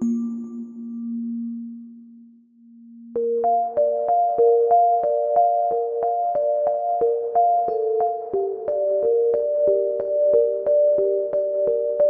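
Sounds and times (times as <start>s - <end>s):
lullaby on electric piano: 3.2s - 12.0s.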